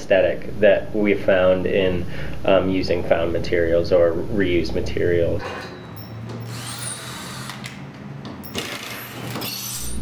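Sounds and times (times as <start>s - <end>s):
cordless drill motor running: 6.4s - 7.8s.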